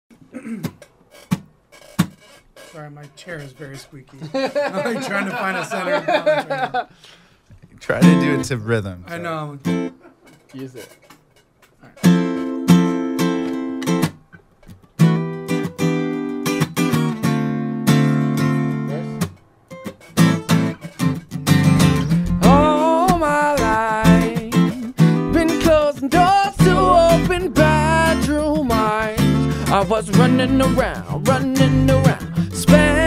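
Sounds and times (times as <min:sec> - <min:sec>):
acoustic guitar strumming chords: 0:07.9 - 0:08.8, 0:12.0 - 0:33.0
electric bass: 0:21.5 - 0:33.0.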